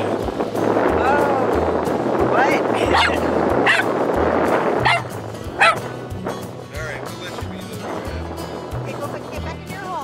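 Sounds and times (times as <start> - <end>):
background music with bass line: 0.0 - 10.0
small dog yipping: 2.9 - 3.9, 4.8 - 5.9.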